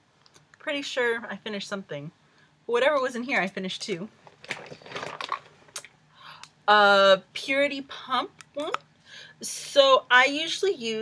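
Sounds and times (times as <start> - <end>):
plastic bag crinkling: 4.2 - 5.9.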